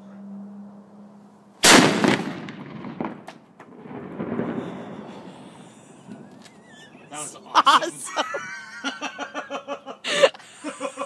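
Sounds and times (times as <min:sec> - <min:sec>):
cannon boom: 0:01.6 - 0:06.4
rumbling echo: 0:01.6 - 0:07.1.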